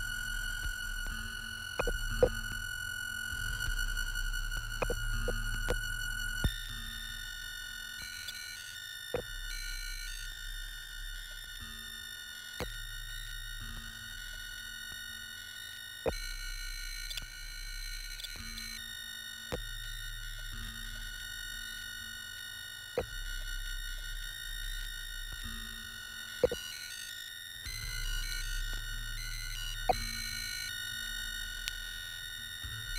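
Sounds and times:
electronic sine tones: 0.0s - 32.9s.

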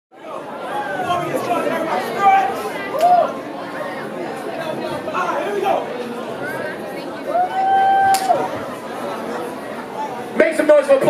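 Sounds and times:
audience chatter: 0.1s - 11.0s.

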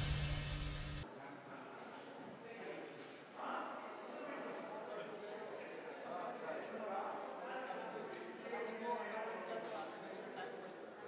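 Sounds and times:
faint chatter in a hall: 1.0s - 11.0s.

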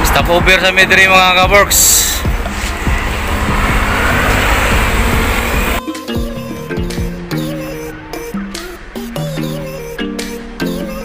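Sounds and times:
vehicle rumble: 0.0s - 11.0s
background music with plucked guitar: 5.2s - 11.0s.

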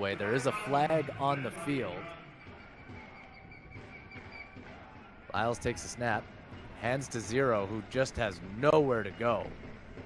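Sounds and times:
faint stadium ambience: 0.0s - 10.0s.

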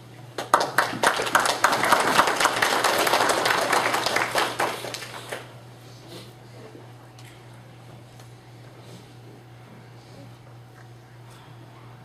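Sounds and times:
audience applauding: 0.4s - 5.5s.

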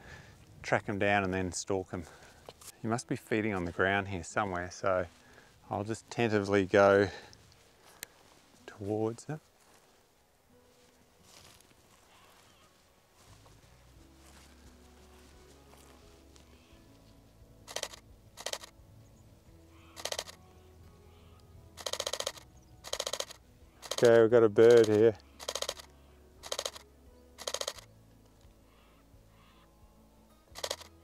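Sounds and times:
soft background music: 0.0s - 31.0s
camera shutter rapid clicks: 17.7s - 18.7s, 19.9s - 20.4s, 21.8s - 26.8s, 27.4s - 27.9s, 30.6s - 30.9s.

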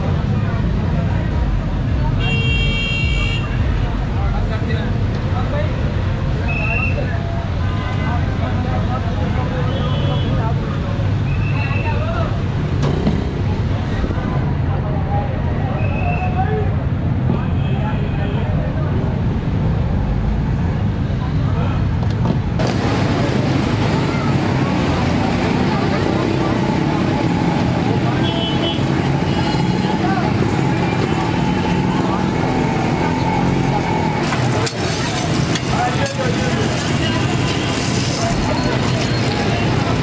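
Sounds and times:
road traffic: 0.0s - 40.0s
background voices talking: 20.7s - 40.0s.

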